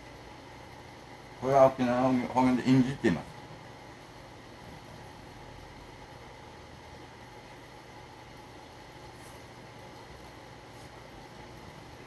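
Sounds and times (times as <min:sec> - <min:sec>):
faint room hum with hiss: 0:00.0 - 0:12.0.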